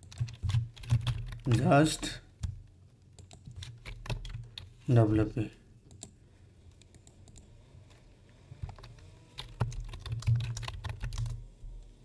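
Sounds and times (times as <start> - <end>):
typing on computer keyboard: 0.0 - 1.8, 3.2 - 4.7, 8.6 - 11.4.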